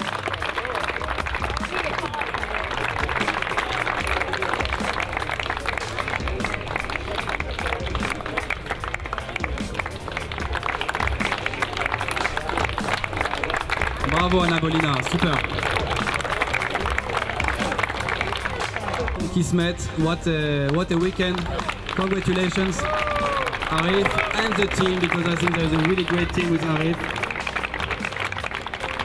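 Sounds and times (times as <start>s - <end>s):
background music: 0.0s - 29.0s
crowd applauding: 0.0s - 29.0s.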